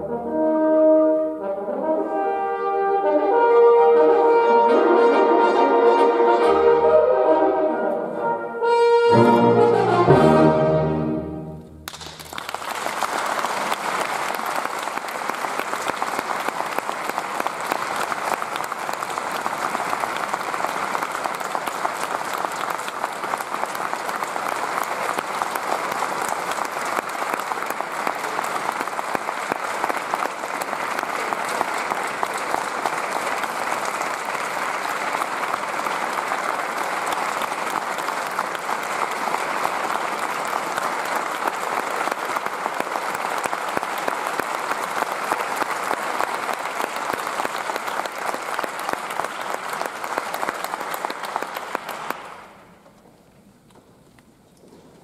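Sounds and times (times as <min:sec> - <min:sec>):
audience applauding: 0:11.8 - 0:52.8.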